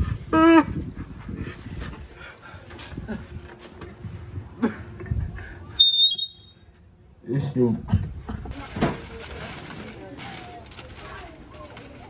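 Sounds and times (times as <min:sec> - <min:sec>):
scuffling and handling noise: 0:08.5 - 0:12.0.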